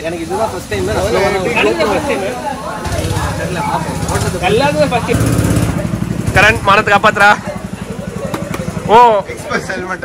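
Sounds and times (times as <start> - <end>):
go-kart engine running: 0.0 - 10.0.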